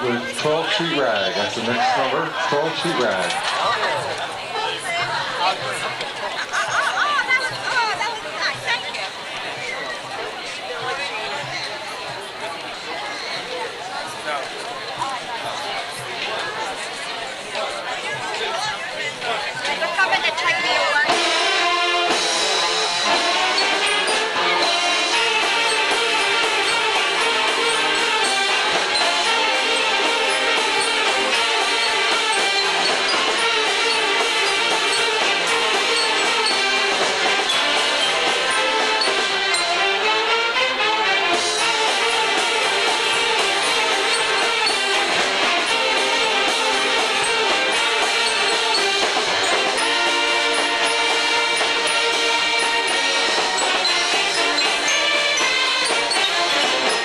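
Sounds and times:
string band playing ragtime: 0:00.0 - 0:09.4, 0:10.2 - 0:57.0
crowd chatter: 0:00.0 - 0:57.0.

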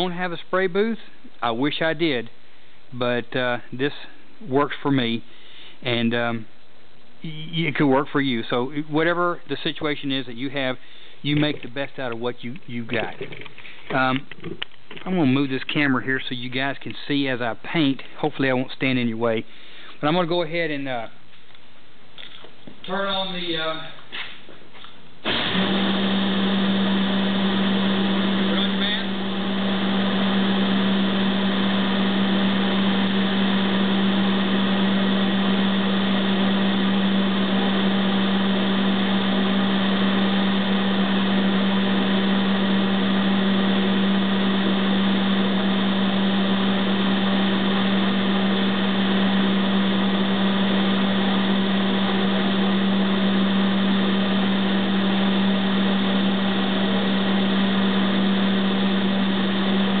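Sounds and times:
exhaust fan running: 0:00.0 - 0:21.0, 0:25.2 - 1:00.0.

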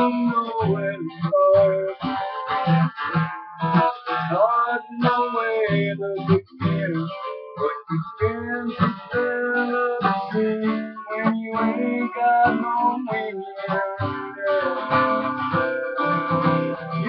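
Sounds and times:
acoustic guitar strummed: 0:00.0 - 0:17.0.

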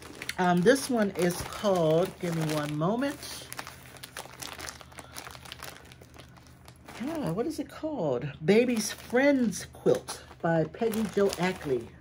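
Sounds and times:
plastic packaging crinkling: 0:00.0 - 0:07.6, 0:08.6 - 0:12.0.

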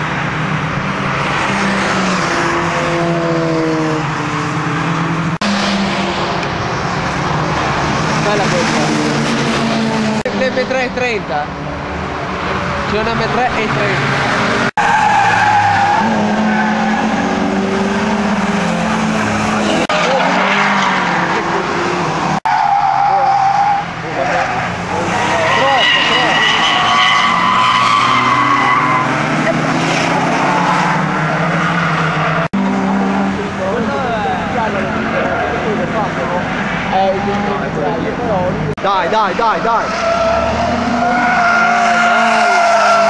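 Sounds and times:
race car engines running hard: 0:00.0 - 0:43.0
tyre squeal: 0:25.0 - 0:29.2.

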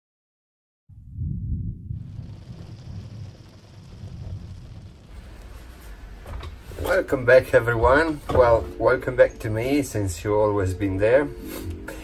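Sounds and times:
deep uneven rumble: 0:00.9 - 0:12.0
steady hiss: 0:02.0 - 0:12.0.

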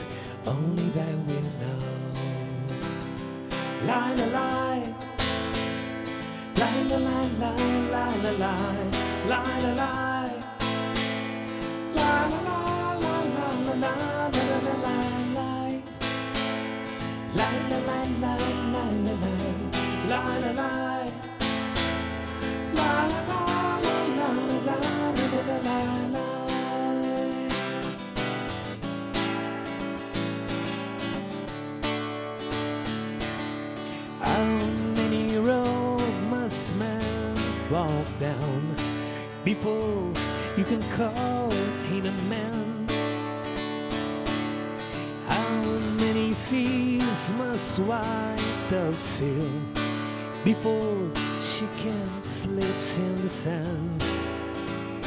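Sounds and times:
man singing: 0:00.0 - 0:05.6, 0:06.2 - 0:28.2, 0:34.1 - 0:43.3, 0:45.2 - 0:54.4
acoustic guitar strumming: 0:00.0 - 0:55.0.

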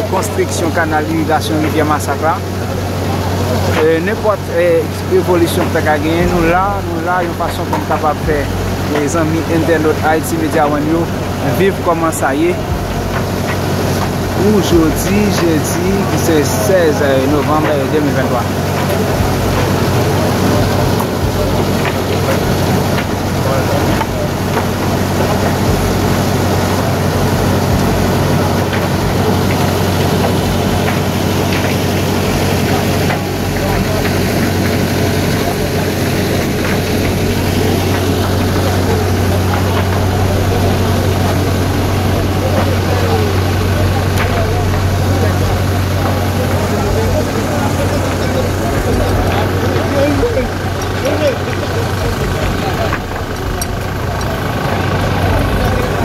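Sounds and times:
indistinct voices: 0:00.0 - 0:56.0
tractor engine humming: 0:00.0 - 0:56.0.

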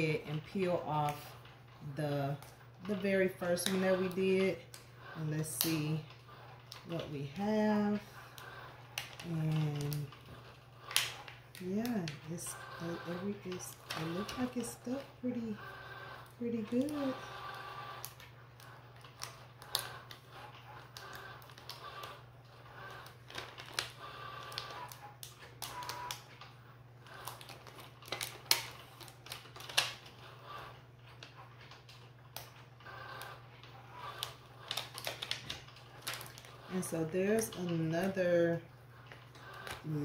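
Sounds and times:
low steady hum: 0:00.0 - 0:40.0
plastic sheet crackling and peeling: 0:00.0 - 0:40.0.

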